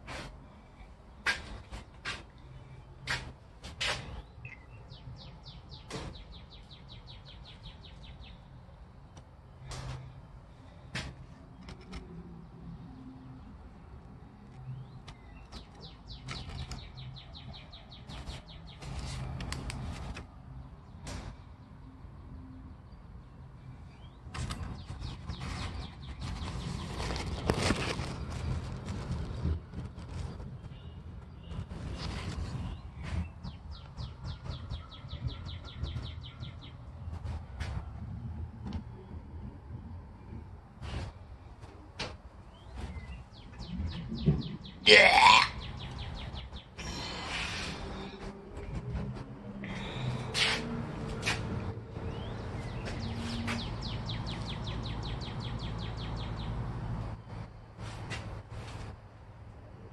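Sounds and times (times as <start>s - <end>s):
birds chirping and trilling: 3.9s - 8.6s, 14.4s - 19.9s, 20.5s - 29.0s, 30.0s - 37.4s, 42.4s - 57.5s
clicks and rustles: 10.9s - 12.3s, 14.4s - 20.4s, 24.3s - 38.9s.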